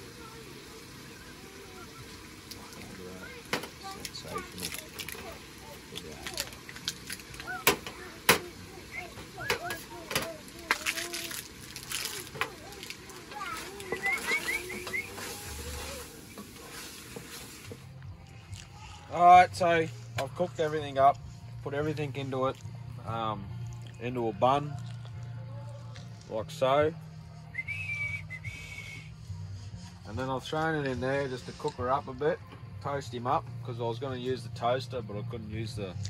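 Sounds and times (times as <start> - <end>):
food sizzling in a pot: 0.0 - 18.0.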